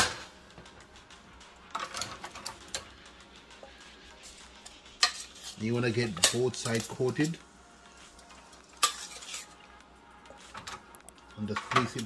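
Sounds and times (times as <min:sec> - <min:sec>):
faint background music: 0:00.0 - 0:12.0
metal tongs and pot clinking: 0:04.6 - 0:07.4, 0:08.3 - 0:09.7, 0:11.4 - 0:12.0.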